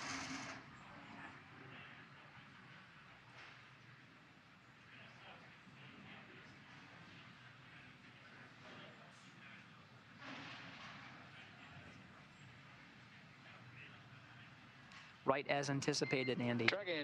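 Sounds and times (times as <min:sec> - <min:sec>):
faint broadcast hiss: 0:00.0 - 0:17.0.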